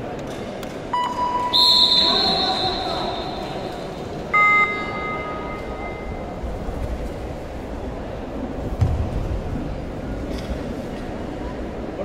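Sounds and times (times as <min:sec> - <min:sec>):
crowd chatter: 0:00.0 - 0:12.0
whistle blasts: 0:01.0 - 0:06.0.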